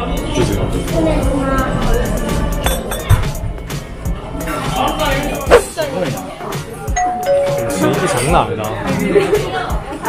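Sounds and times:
background music: 0.0 - 10.0
two-note ding-dong chime: 7.0 - 8.1.

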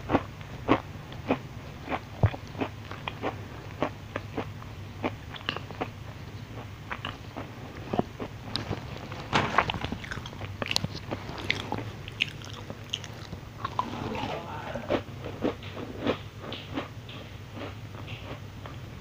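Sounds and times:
crunching and chewing cookies: 0.0 - 19.0.

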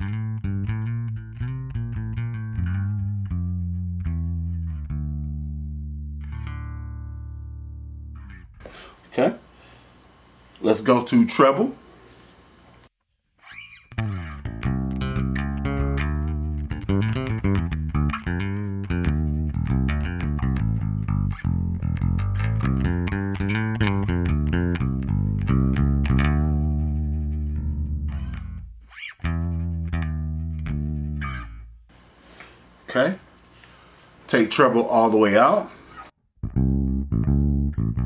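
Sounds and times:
electric bass plucked notes: 0.0 - 8.6, 13.7 - 31.9, 36.3 - 38.0.

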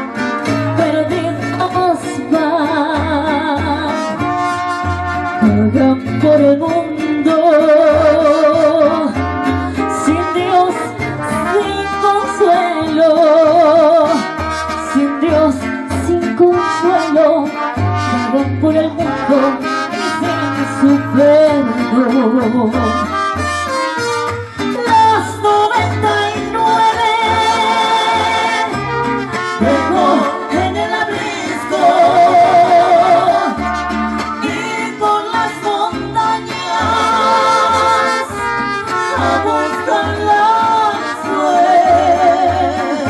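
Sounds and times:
trumpets: 0.0 - 1.1, 3.9 - 5.9, 8.0 - 25.3, 26.8 - 35.0, 36.4 - 43.0
woman singing: 0.0 - 4.4, 5.4 - 23.2, 24.6 - 43.0
mariachi band playing: 0.0 - 43.0
plucked bass line: 0.0 - 43.0
strummed guitars: 0.0 - 43.0.

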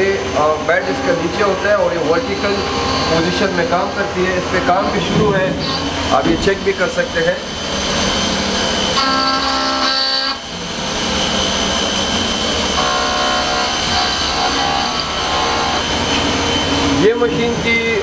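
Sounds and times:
milling machine cutting metal: 0.0 - 18.0
shrill pitched machine whine: 0.0 - 18.0.

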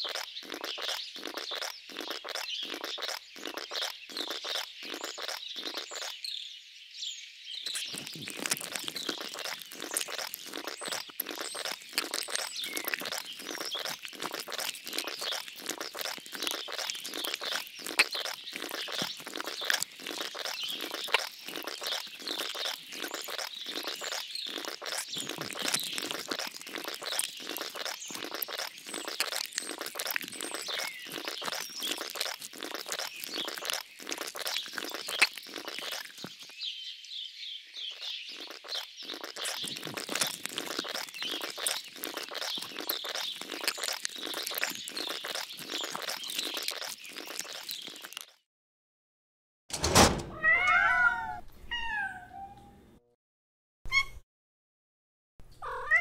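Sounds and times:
birdsong: 0.0 - 48.3
quick crackling: 7.7 - 36.3, 38.3 - 48.2
cat meowing loudly: 50.3 - 52.8, 55.6 - 56.0.

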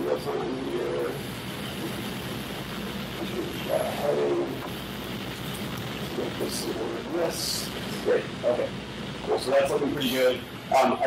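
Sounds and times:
room hum: 0.0 - 11.0.

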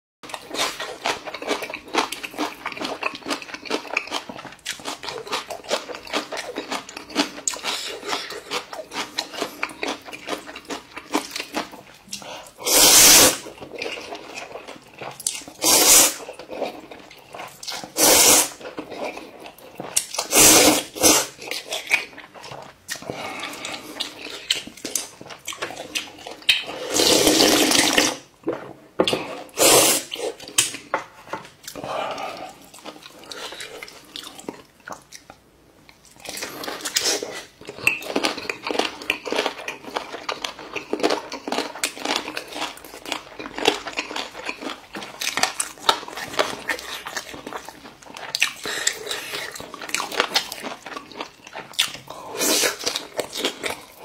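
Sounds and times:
wet chewing and mouth smacking: 0.2 - 12.6, 13.4 - 27.2, 30.1 - 54.0
loud slurp of noodles: 12.6 - 13.4, 15.6 - 16.2, 17.9 - 18.6, 20.2 - 21.4, 26.7 - 28.2, 29.5 - 30.3.

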